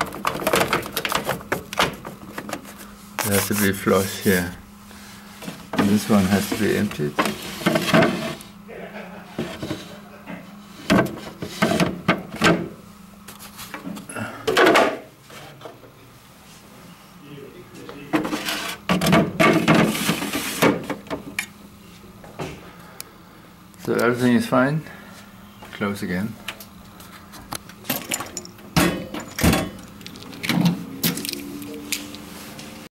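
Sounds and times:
plastic parts knocking and scraping: 0:00.0 - 0:03.6
machine hum: 0:00.0 - 0:32.9.

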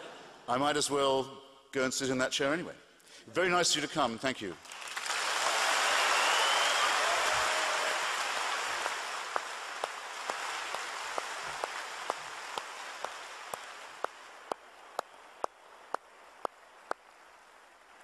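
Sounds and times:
audience applauding: 0:04.6 - 0:18.0.

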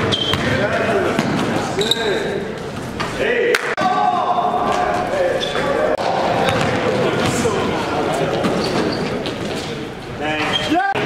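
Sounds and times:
basketball bouncing on wooden floor: 0:06.0 - 0:07.5.

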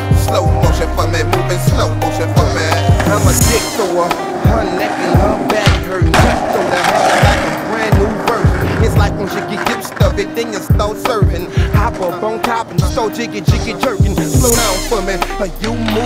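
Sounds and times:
hip hop beat: 0:00.0 - 0:16.0
skateboard wheels rolling on concrete: 0:00.0 - 0:16.0
skateboard trick clack: 0:03.0 - 0:13.1.

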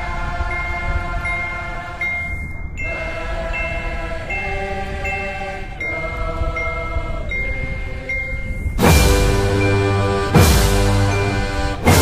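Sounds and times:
marching band playing: 0:08.8 - 0:12.0.

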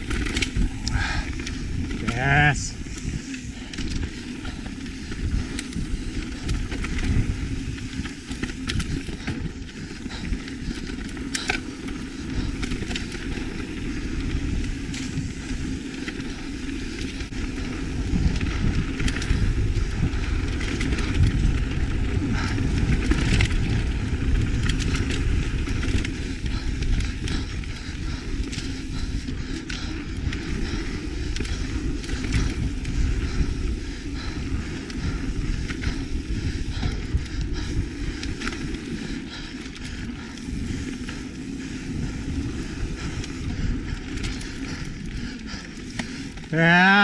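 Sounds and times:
wind on microphone: 0:00.0 - 0:46.6
tyres rumbling on dirt trail: 0:00.0 - 0:47.0.

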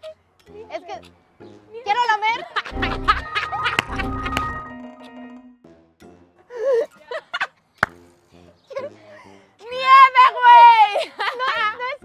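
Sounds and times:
women laughing: 0:02.2 - 0:04.4, 0:06.5 - 0:07.6, 0:10.6 - 0:12.0.

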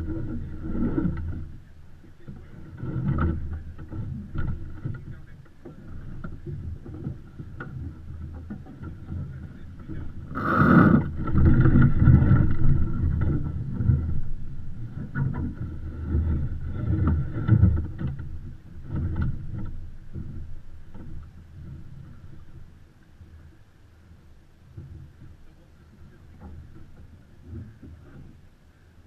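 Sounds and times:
water sloshing against a hull: 0:00.0 - 0:29.0.

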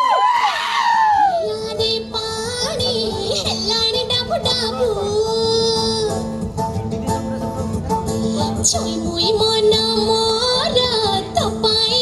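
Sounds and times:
instrumental backing: 0:01.5 - 0:12.0.

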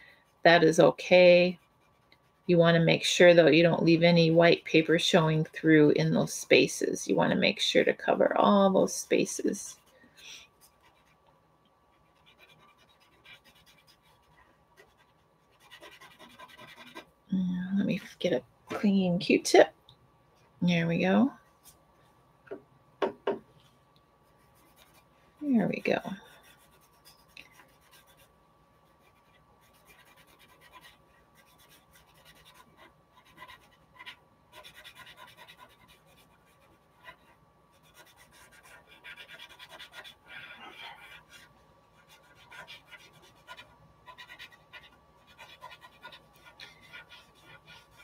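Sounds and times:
cotton swab scratching paper: 0:00.4 - 0:05.6, 0:12.0 - 0:17.1, 0:25.7 - 0:28.3, 0:28.9 - 0:48.0.

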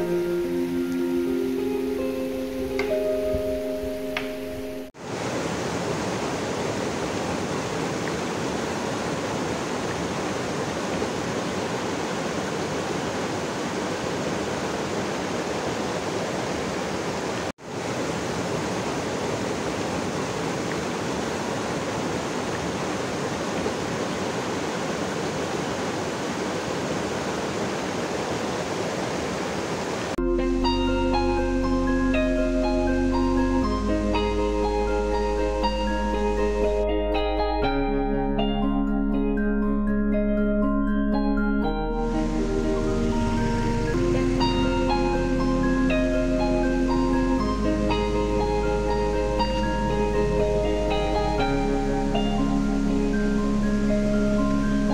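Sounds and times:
soft mallet music: 0:00.0 - 0:05.0, 0:30.2 - 0:54.9
stream rushing over stones: 0:05.0 - 0:30.2.

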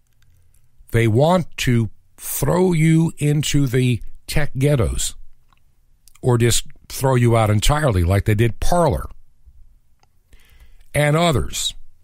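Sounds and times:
person speaking: 0:00.9 - 0:05.2, 0:06.1 - 0:09.2, 0:10.8 - 0:11.9
soft in-breath: 0:10.3 - 0:10.9.

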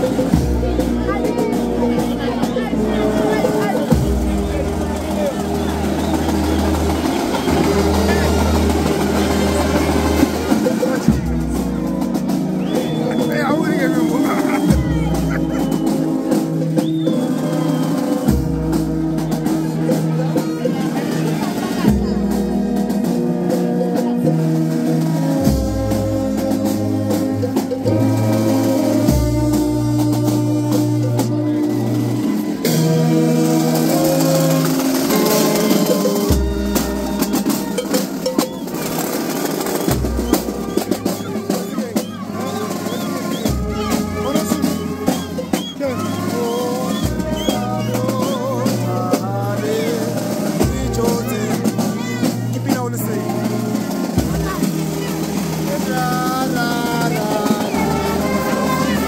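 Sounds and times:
higher brass parts: 0:00.0 - 0:59.0
tubas holding low notes: 0:00.0 - 0:59.0.

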